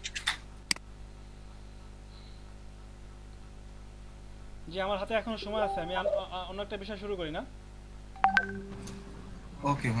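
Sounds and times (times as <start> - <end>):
electronic notification chime: 5.6 - 6.4, 8.2 - 8.8.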